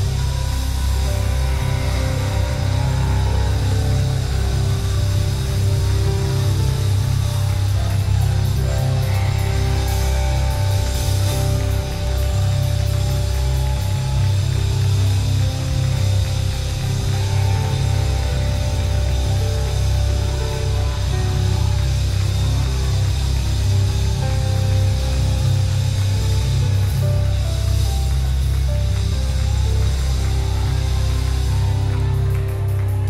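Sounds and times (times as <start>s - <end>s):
heavy steady bass: 0.0s - 33.0s
live band playing slow chords: 0.0s - 33.0s.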